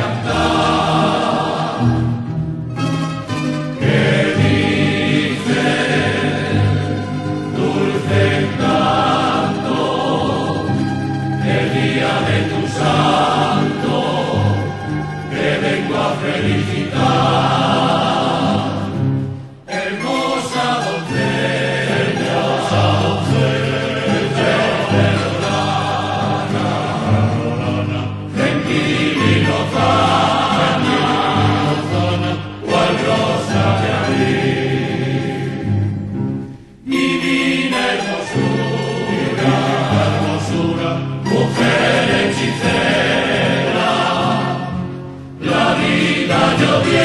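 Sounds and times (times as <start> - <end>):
choir singing: 0.0 - 47.0.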